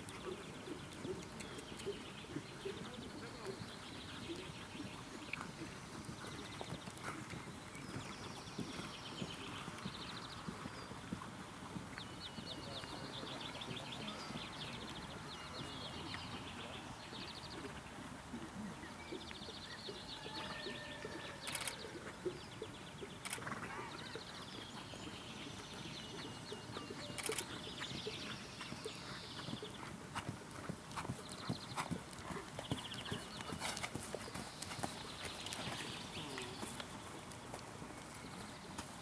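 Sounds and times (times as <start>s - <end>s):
hoofbeats on sand: 24.2s - 39.0s.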